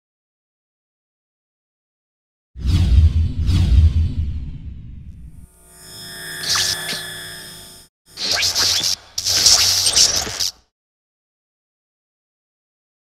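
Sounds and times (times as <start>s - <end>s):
low hum: 3.0s - 10.5s
shimmering ringing tones: 5.5s - 10.4s
hissing bursts: 8.2s - 10.6s.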